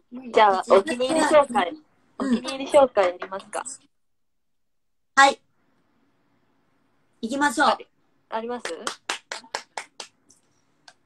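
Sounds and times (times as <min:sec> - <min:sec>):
sharp hand claps: 0:08.6 - 0:11.0.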